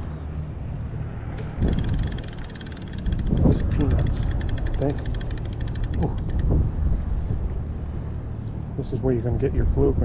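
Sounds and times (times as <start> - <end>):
wind rumble on microphone: 1.5 - 4.7, 5.6 - 10.0
fishing reel clicking: 1.6 - 6.5.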